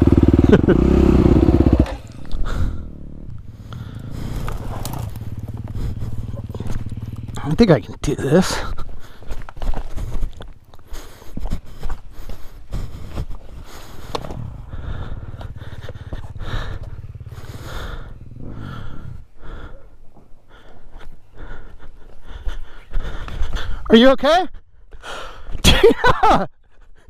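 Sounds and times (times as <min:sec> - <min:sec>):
dirt bike engine: 0:00.0 - 0:23.8
rocks knocking and scraping: 0:04.3 - 0:05.8, 0:09.3 - 0:10.9.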